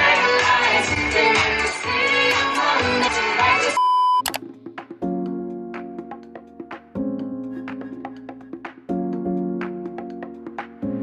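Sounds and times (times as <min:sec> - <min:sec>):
pop music with heavy bass beat: 0:00.0 - 0:03.8
high electronic bleep: 0:03.8 - 0:04.3.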